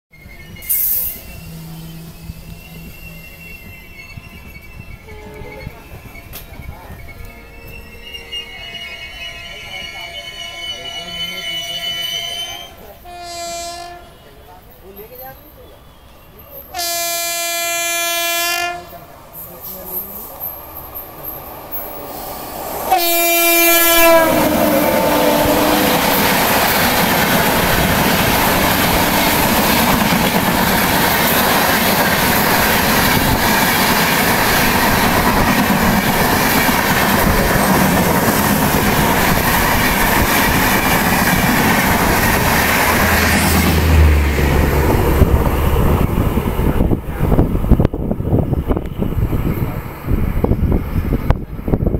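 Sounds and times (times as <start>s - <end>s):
locomotive horn blasts: 5.0s - 5.6s, 10.5s - 14.2s, 16.7s - 19.0s, 22.9s - 26.1s
train wheels rattling past: 16.4s - 51.2s.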